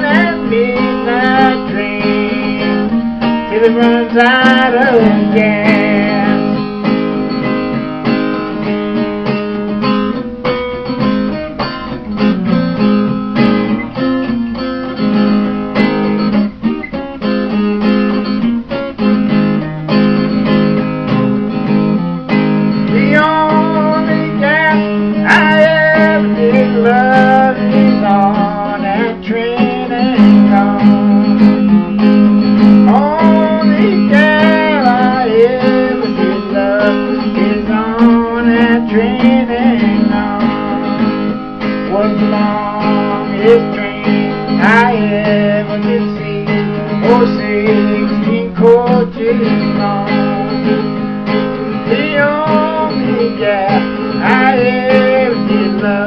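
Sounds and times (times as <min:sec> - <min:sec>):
acoustic guitar playing: 0:00.0 - 0:56.0.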